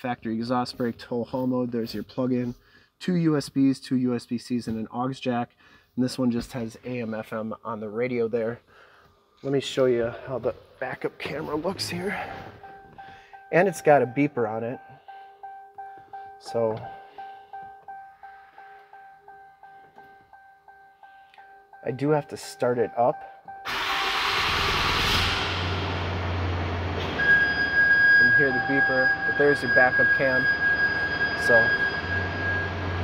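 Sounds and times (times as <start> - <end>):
truck backup alarm tone: 11.2 - 33.0
warning chime beeping: 11.3 - 23.7, 27.2 - 33.0.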